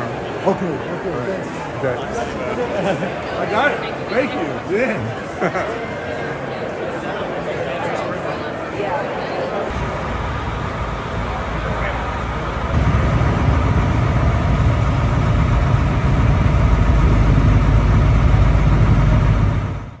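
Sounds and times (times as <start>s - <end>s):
voices outdoors: 0.0s - 12.8s
low engine rumble: 9.7s - 20.0s.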